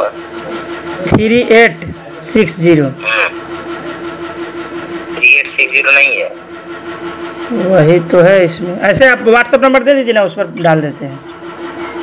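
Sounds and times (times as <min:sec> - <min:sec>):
voice over telephone: 0:03.0 - 0:03.4, 0:05.2 - 0:06.3
telephone line hum: 0:03.0 - 0:04.1, 0:05.1 - 0:06.5.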